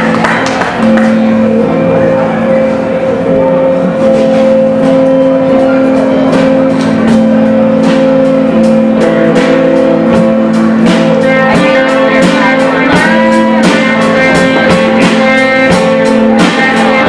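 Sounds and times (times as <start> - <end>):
drums: 0.0 - 17.0
electric guitar chords: 0.0 - 17.0.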